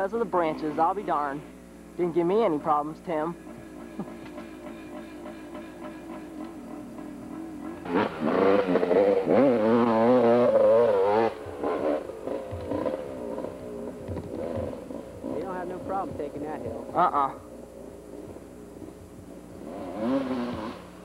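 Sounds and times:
dirt bike engine revving: 3.4s - 21.0s.

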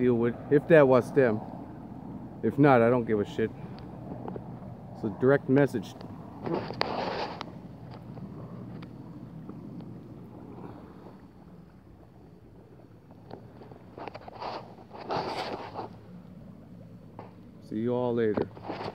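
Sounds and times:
rushes of noise: 0.0s - 17.4s
water moving around canoe: 6.1s - 17.6s.

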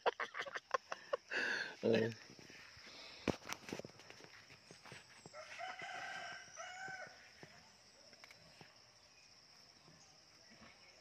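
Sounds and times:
rooster crowing: 5.3s - 7.3s.

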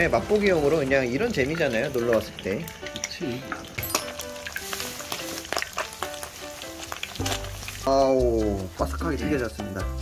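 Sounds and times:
oil sizzling with crackling pops: 0.0s - 10.0s.

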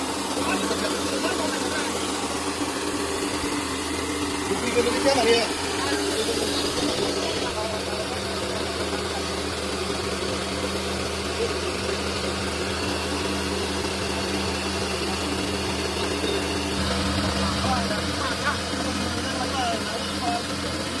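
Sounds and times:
electric motor humming: 0.0s - 21.0s
rice milling machine whirring: 0.0s - 21.0s.

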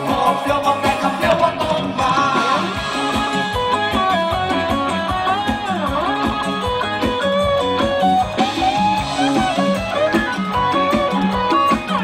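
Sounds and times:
bass: 0.0s - 12.0s
electric guitar lead melody: 0.0s - 12.0s
steady drum beat: 0.0s - 12.0s.

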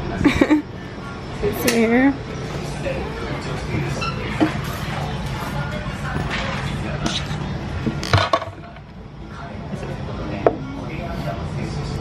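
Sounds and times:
low restaurant hum: 0.0s - 12.0s.

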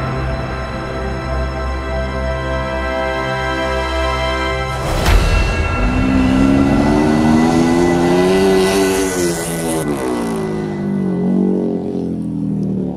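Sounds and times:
motorcycle engine revving: 5.8s - 12.9s.

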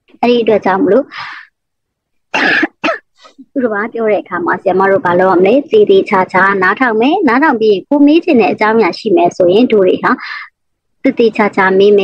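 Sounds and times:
person coughing: 2.4s - 3.4s.

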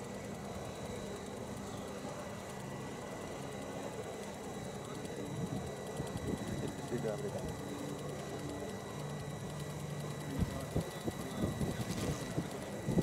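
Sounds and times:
high steady engine whine: 0.0s - 13.0s.

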